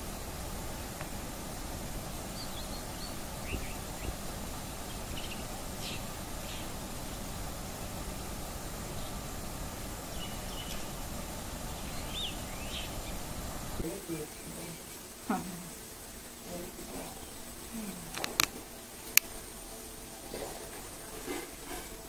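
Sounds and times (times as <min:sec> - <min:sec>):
outdoor background noise: 0:00.0 - 0:22.0.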